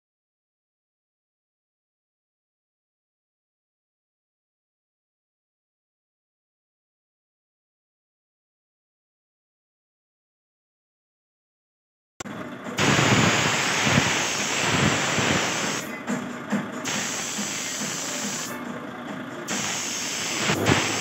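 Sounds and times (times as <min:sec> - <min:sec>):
air spray gun hissing: 0:12.8 - 0:16.0, 0:16.8 - 0:18.7, 0:19.5 - 0:21.0.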